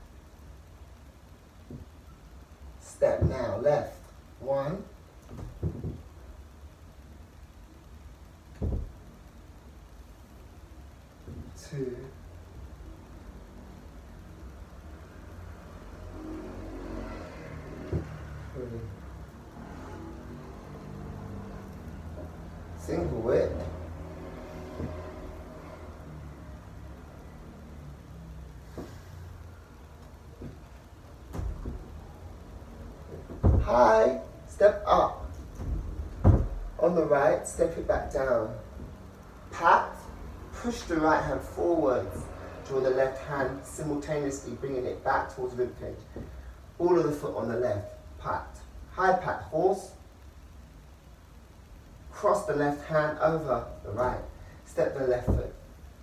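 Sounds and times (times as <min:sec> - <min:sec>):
low room hum: 0:00.0 - 0:56.0
dull thumps: 0:05.2 - 0:06.2, 0:08.5 - 0:09.1, 0:30.3 - 0:32.0, 0:33.0 - 0:36.8
steady low rumble: 0:17.5 - 0:46.8
bare feet on wooden floor: 0:28.6 - 0:29.3, 0:30.3 - 0:32.1.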